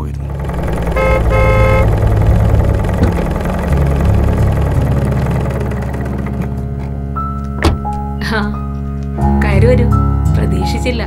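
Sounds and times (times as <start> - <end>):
car engine idling: 0.0 - 8.2
car horn beeps: 0.7 - 2.0.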